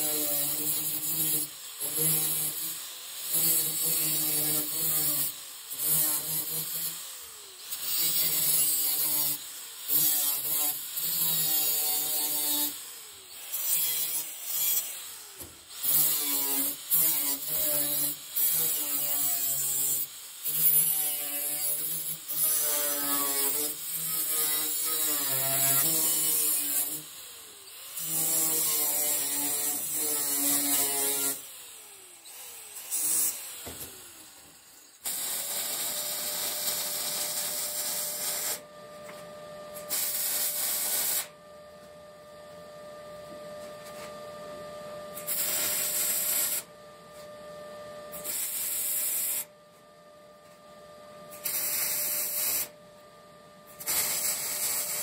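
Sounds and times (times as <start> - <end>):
angle grinder cutting steel: 0.0 - 39.2, 39.8 - 41.3, 45.2 - 46.7, 48.1 - 49.5, 51.3 - 52.8, 53.7 - 55.0.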